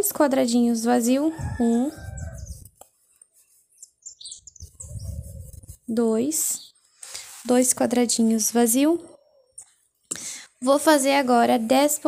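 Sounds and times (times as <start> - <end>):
faint bird chirps: 1.4 - 2.7, 3.7 - 7.2
low muffled rumbles: 1.4 - 2.8, 4.5 - 5.9.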